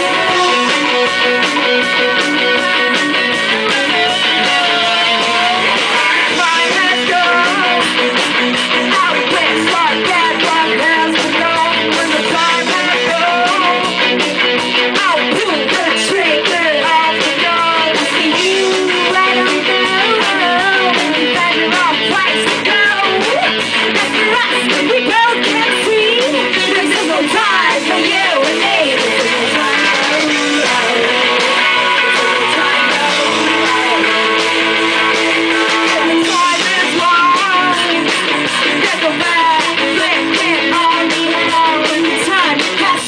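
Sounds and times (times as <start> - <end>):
women singing: 0.0 - 1.1, 2.4 - 14.0, 14.9 - 34.6, 35.5 - 43.0
rock band guitars: 0.0 - 43.0.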